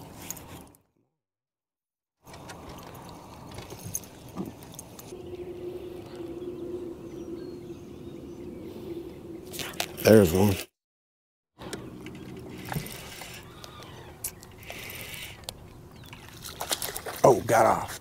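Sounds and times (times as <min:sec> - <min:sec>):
steady low hum: 0:05.0 - 0:10.6.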